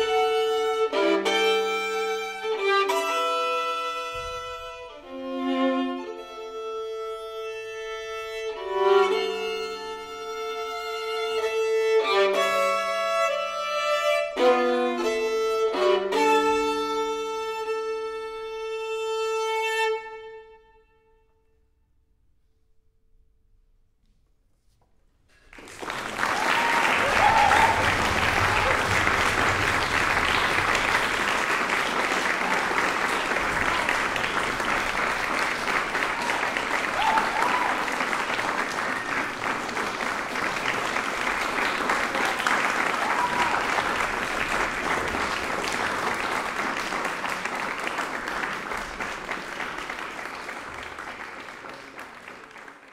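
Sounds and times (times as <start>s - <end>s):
audience applause: 25.4s - 52.9s.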